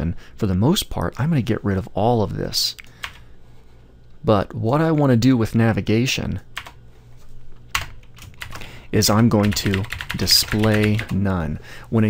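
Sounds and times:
keyboard keystrokes clicking: 0:09.4 - 0:11.2.

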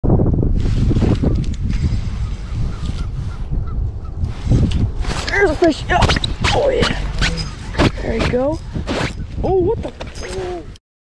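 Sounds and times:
wind buffeting microphone: 0:00.0 - 0:10.8.

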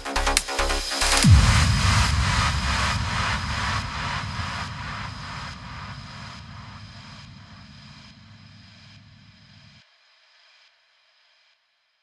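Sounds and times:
trance music noise wash: 0:00.0 - 0:11.6.

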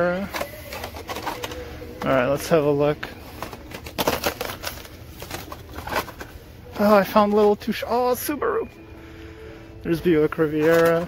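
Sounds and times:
plastic blister packs clattering: 0:00.0 - 0:08.1, 0:10.3 - 0:11.0.

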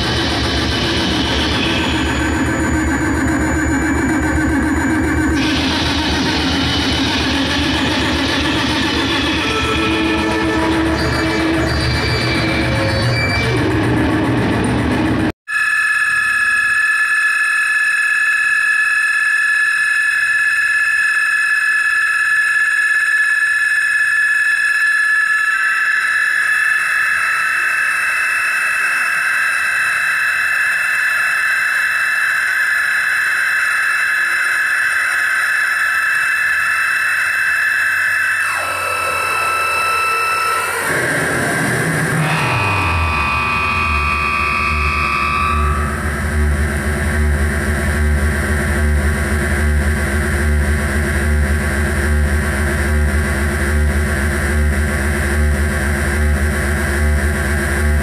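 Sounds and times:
high-pitched synthesizer tones: 0:00.0 - 0:14.2, 0:15.5 - 0:48.2
low drone: 0:00.0 - 0:15.3, 0:25.0 - 0:58.0
tone sliding downward: 0:33.3 - 0:47.4.

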